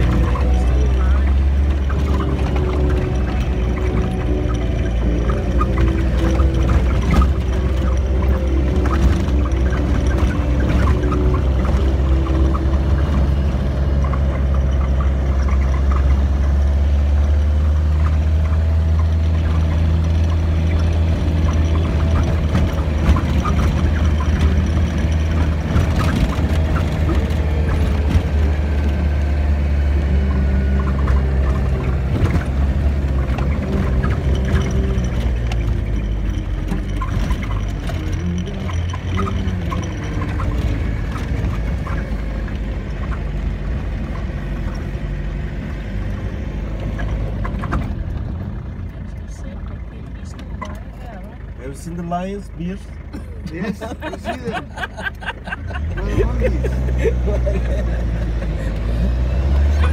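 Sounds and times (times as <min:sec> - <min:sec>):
vehicle engine drone: 0:00.0 - 0:59.9.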